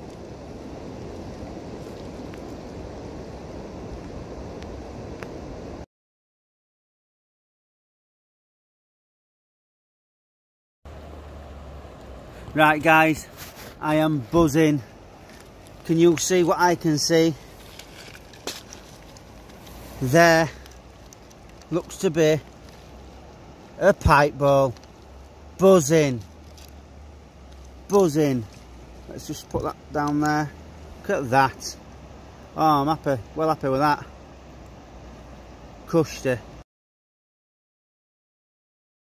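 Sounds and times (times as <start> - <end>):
faint steady hiss: 10.9 - 36.6
low outdoor rumble: 10.9 - 36.6.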